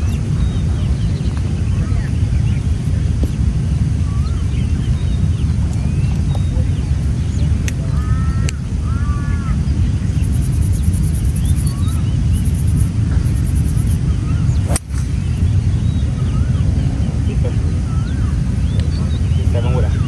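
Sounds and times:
birds chirping: 0.0 - 20.0
wind rumble on microphone: 0.0 - 20.0
golf club striking ball: 14.7 - 15.2.

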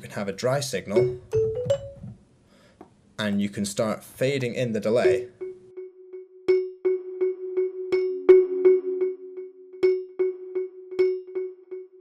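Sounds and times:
marimba notes rising: 1.0 - 2.1, 5.0 - 5.6.

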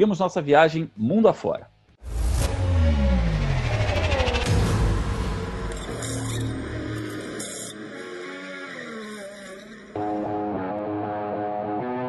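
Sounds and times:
transition music: 2.0 - 7.3.

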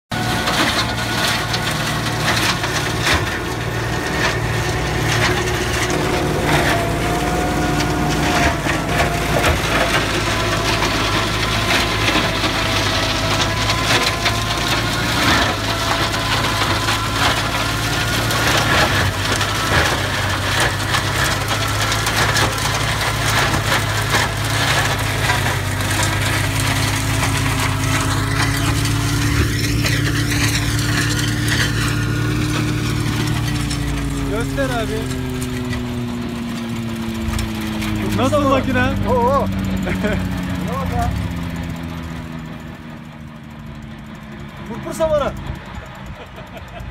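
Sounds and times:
tractor engine drone: 0.0 - 46.9
branch shredder chopping: 0.1 - 46.9.

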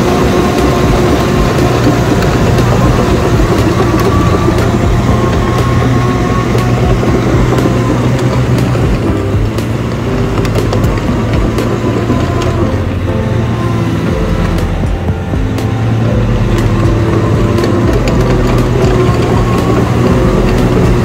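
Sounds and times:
tracked machine engine running: 0.0 - 21.0.

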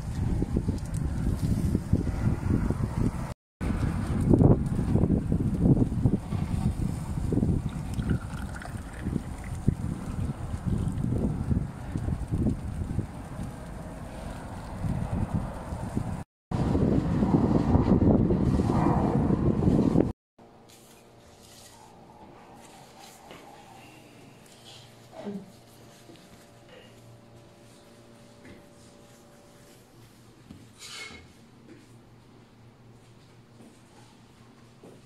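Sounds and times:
wind buffeting microphone: 0.0 - 20.1.

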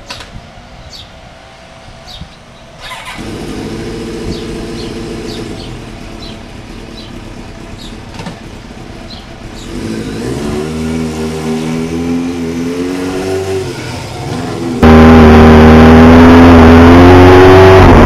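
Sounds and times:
motorcycle engine revving: 2.8 - 18.0.

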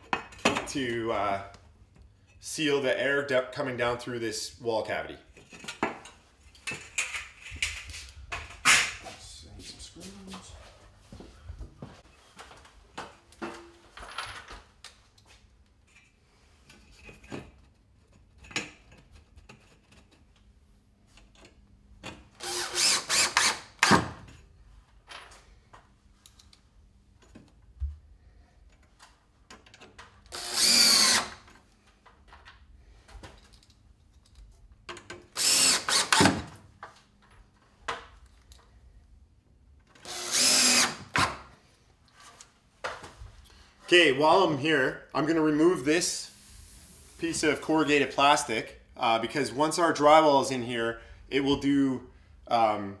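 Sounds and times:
cordless drill driving screws: 22.4 - 24.1, 30.3 - 31.4, 35.4 - 36.5, 40.0 - 41.4.

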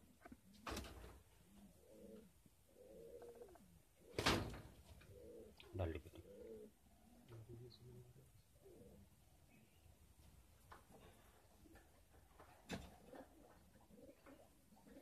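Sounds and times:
pigeons cooing: 0.0 - 10.0, 10.8 - 15.0.

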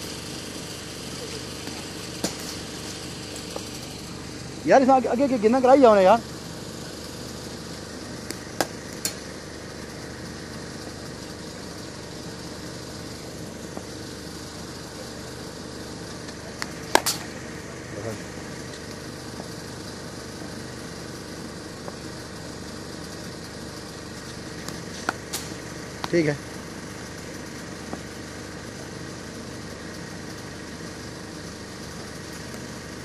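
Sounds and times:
steady engine-like hum: 0.0 - 33.0
cricket ball knocks on bat: 16.6 - 17.3.

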